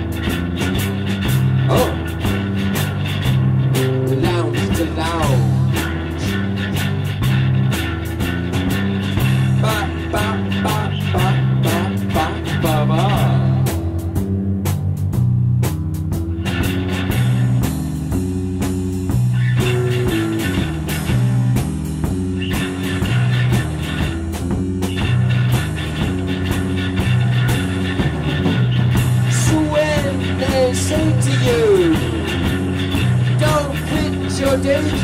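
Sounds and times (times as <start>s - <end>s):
drum hits: 0.0s - 35.0s
electric guitar bending lines: 0.0s - 35.0s
repeating bass riff: 0.0s - 35.0s.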